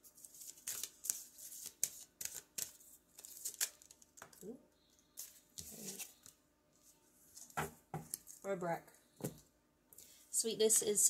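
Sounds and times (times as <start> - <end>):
cards being shuffled: 0.2 - 4.4, 5.2 - 6.4.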